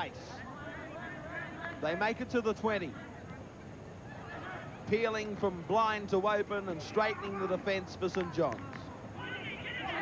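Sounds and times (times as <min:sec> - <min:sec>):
open-air background noise: 0:00.0 - 0:10.0.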